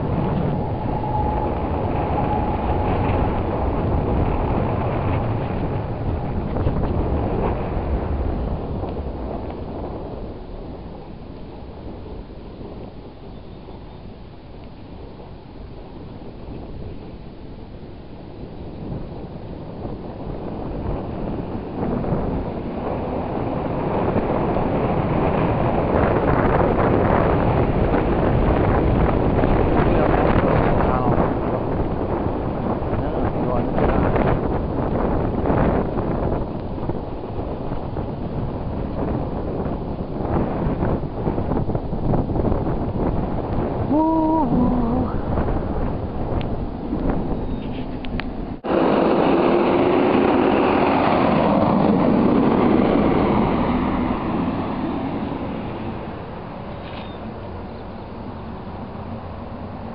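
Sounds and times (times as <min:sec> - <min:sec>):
bicycle ride rumble: 0:00.0 - 0:59.9
wind buffeting microphone: 0:00.0 - 0:59.9.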